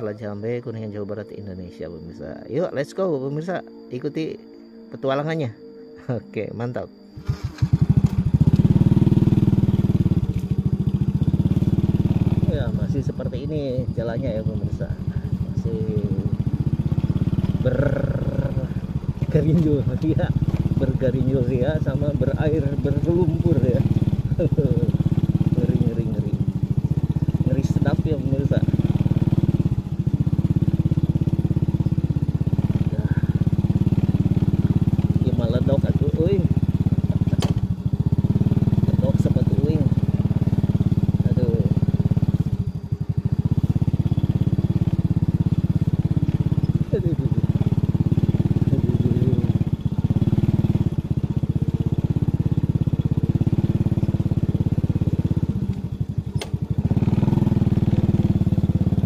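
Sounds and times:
small motorcycle engine running: 6.6 - 59.0.

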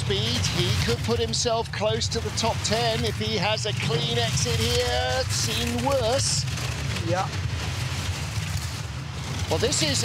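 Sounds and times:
bobsleigh rumble: 0.0 - 10.0.

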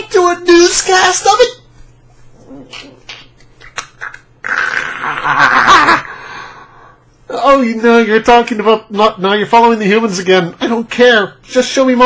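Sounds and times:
mouth clicks: 2.7 - 5.2
faint breaths: 6.1 - 7.3.

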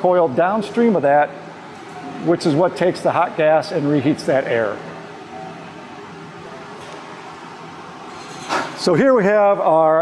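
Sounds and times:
even room hiss: 0.0 - 10.0.

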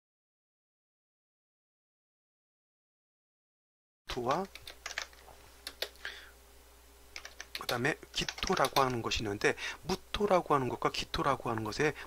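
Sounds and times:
keyboard typing: 4.1 - 6.1, 7.2 - 9.1.

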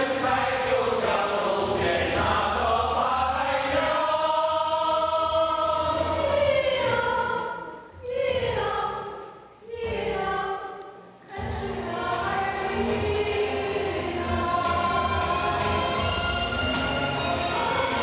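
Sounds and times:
mixed choir singing: 0.0 - 18.0.

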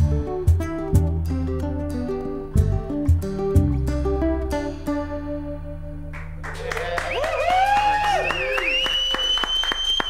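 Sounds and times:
live band bass note ringing: 0.0 - 6.6
group applauding and cheering: 6.1 - 10.0
high whoops: 6.5 - 10.0.

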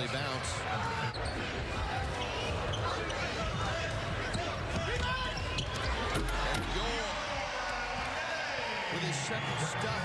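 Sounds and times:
sneaker squeaks: 1.0 - 3.6, 4.2 - 6.4.

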